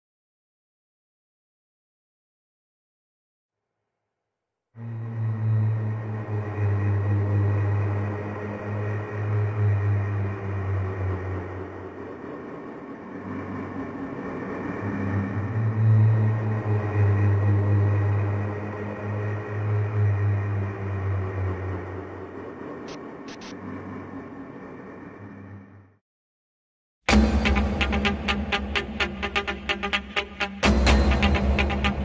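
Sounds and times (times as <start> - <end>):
dark rock instrumental drone: 27.1 - 32.0.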